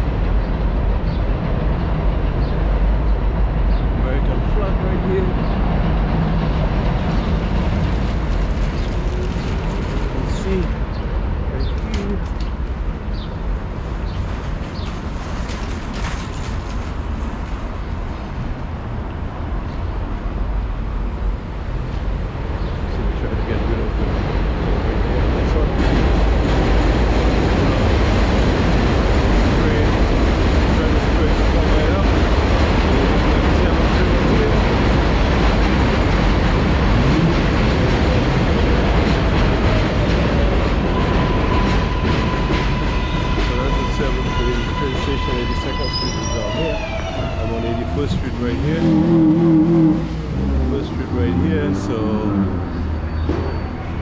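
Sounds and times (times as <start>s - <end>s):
elevated train rumbling: 0.0s - 54.0s.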